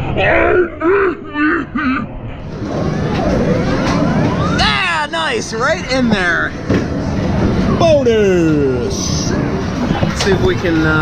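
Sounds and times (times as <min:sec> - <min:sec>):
din of arcade machines: 0:01.2 - 0:11.0
rising electronic tones: 0:02.2 - 0:07.8.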